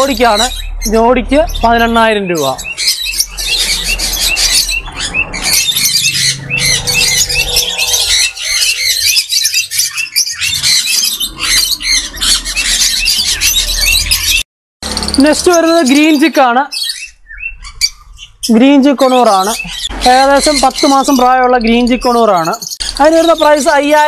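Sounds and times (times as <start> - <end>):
parrots chirping and squawking: 0.0 - 24.0.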